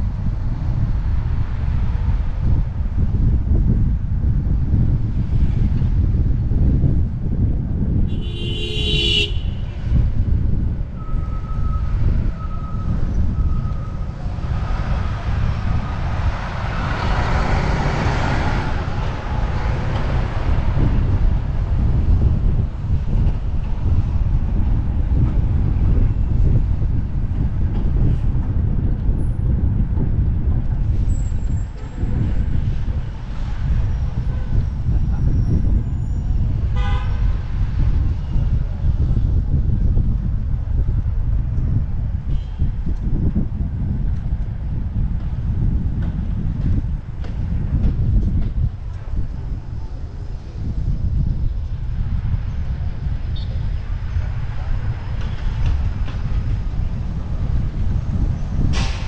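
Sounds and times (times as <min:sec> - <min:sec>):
city traffic rumble: 0:00.0 - 0:59.0
wind buffeting microphone: 0:00.0 - 0:59.0
horn toot: 0:08.1 - 0:09.8, 0:36.8 - 0:37.3
vehicle passing: 0:14.5 - 0:21.1.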